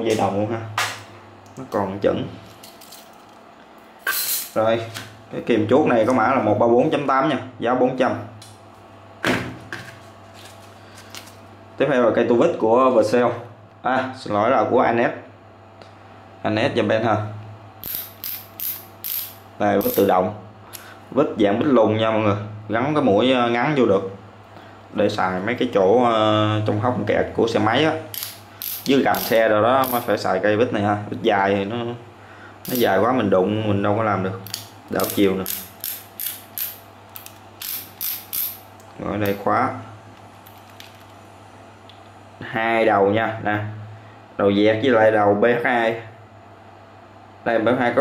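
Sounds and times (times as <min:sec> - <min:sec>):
ratcheting screwdriver clicking: 0:17.8 - 0:20.1, 0:28.1 - 0:30.1, 0:34.5 - 0:38.6.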